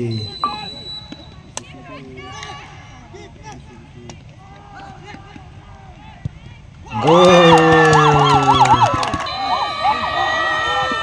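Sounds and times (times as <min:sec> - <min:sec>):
chatter of spectators: 0:00.0 - 0:11.0.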